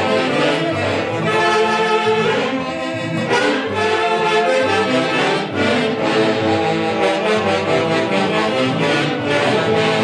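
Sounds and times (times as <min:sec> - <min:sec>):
loud live band music: 0:00.0 - 0:10.0.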